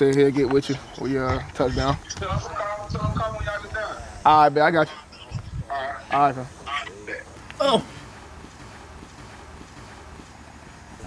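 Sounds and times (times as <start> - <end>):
wind rumble on microphone: 1.2 - 4.2, 5.3 - 5.8.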